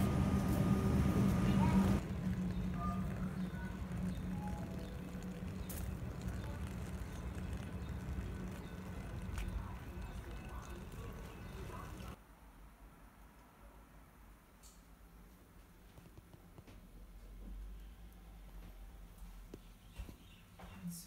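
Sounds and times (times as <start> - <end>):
low hum: 0.0 - 12.2
faint distant voices: 0.2 - 12.2.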